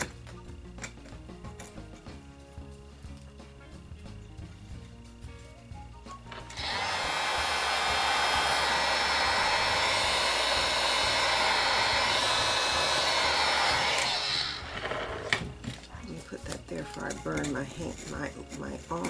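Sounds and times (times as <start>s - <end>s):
heat gun blowing: 6.3s - 15.5s.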